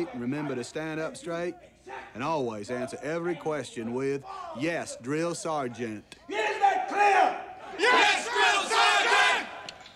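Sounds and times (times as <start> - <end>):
group shouting in unison: 6.7 - 9.6.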